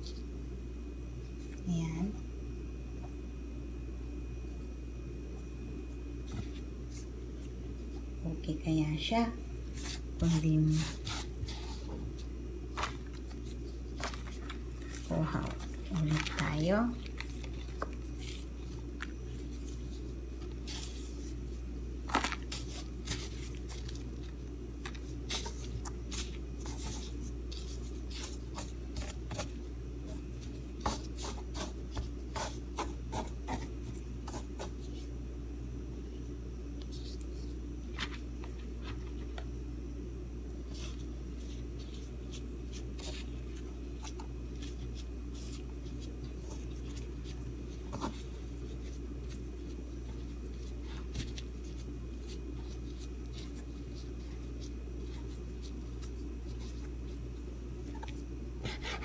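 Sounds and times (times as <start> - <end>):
steady low hum: 0.0 - 59.0
pastry strands rustling on board: 6.1 - 35.3, 36.7 - 39.6, 40.4 - 58.9.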